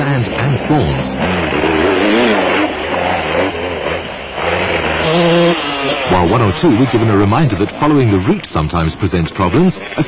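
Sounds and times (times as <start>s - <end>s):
off-road vehicle engines revving: 0.0s - 10.0s.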